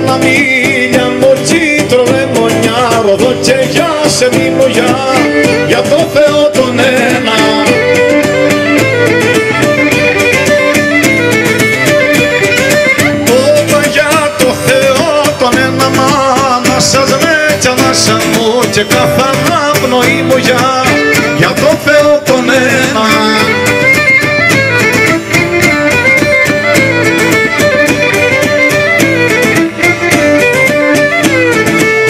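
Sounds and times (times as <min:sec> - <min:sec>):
plucked lute accompaniment: 0:00.0 - 0:32.0
violin playing melody: 0:03.8 - 0:15.2, 0:19.2 - 0:32.0.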